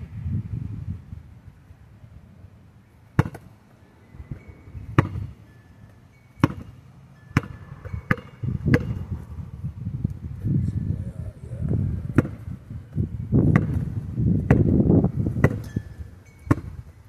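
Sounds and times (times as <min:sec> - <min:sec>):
basketball bouncing on gravel: 0:03.1 - 0:03.5, 0:04.9 - 0:05.4, 0:06.4 - 0:09.1, 0:12.1 - 0:15.8, 0:16.4 - 0:16.9.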